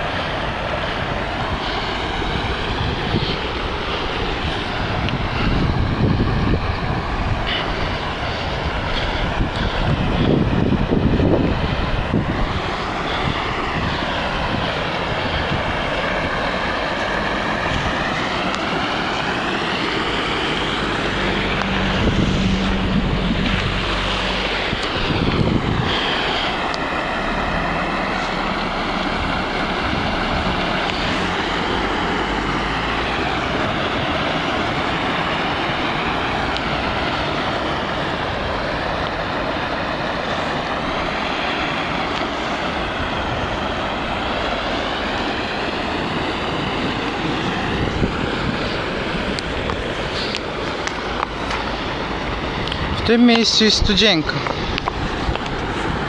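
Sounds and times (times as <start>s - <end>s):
storm water rushing from manhole: 0.0s - 56.0s.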